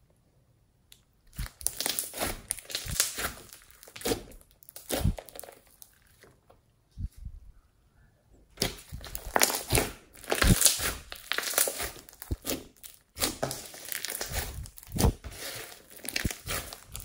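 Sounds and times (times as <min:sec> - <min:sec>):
slime crackling and popping: 0:01.3 - 0:06.3, 0:08.6 - 0:17.0.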